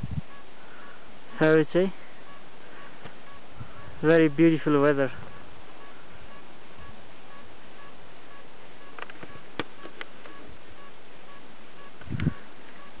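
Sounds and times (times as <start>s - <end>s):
camcorder recording hiss: 0.0s - 13.0s.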